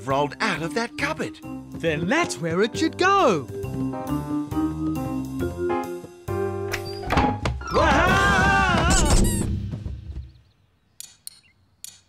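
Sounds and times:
cartoon music: 0.0s - 6.0s.

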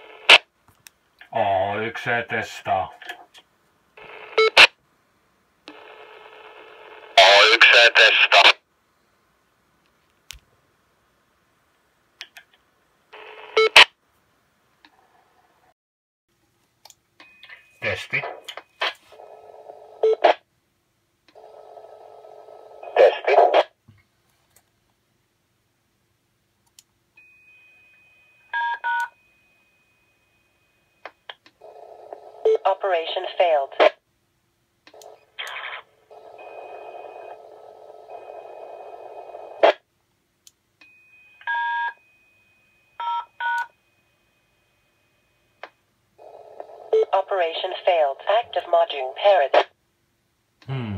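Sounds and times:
radio hiss: 7.2s - 8.6s
radio noise: 7.2s - 8.6s, 22.9s - 23.7s, 47.0s - 49.7s
touch-tone codes over radio: 7.2s - 8.6s, 47.0s - 49.7s.

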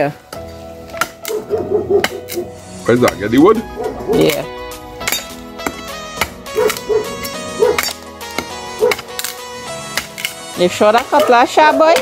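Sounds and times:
background music: 0.0s - 12.0s
blade chopping into wood: 5.1s - 10.4s.

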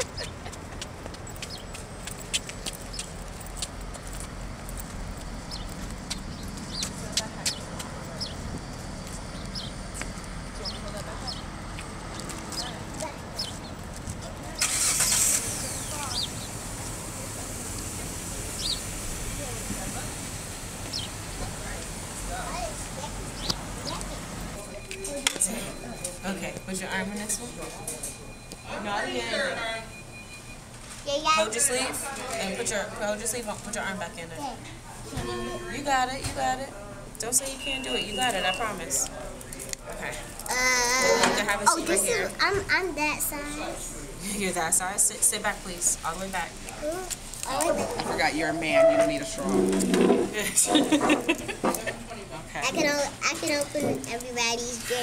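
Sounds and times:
vehicle engine running: 0.0s - 25.2s
loud hiss: 14.6s - 20.9s.

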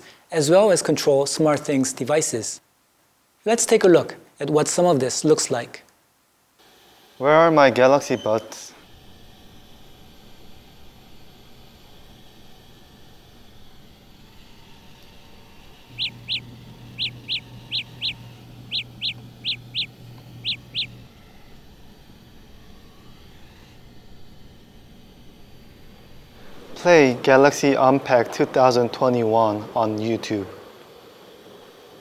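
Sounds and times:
low hum: 8.8s - 32.0s
short high chirps: 16.0s - 16.4s, 17.0s - 20.9s.

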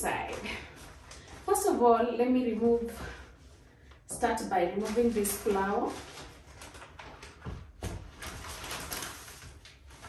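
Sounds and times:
paper wrapping rustling: 4.3s - 10.0s.

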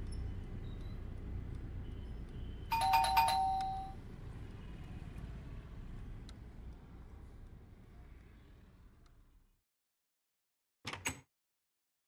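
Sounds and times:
electronic doorbell chime: 2.7s - 4.0s.

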